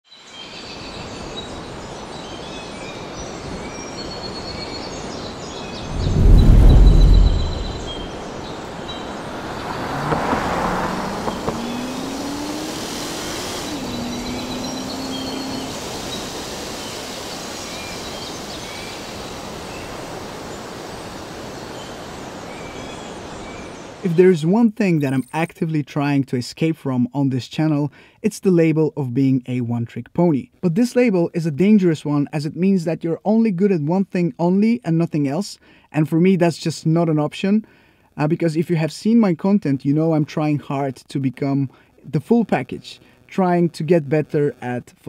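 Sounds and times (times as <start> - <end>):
birds chirping: 0.2 - 24.1
loud low rumble: 5.8 - 8.2
car engine revving: 6.0 - 17.9
steady hiss: 11.3 - 24.2.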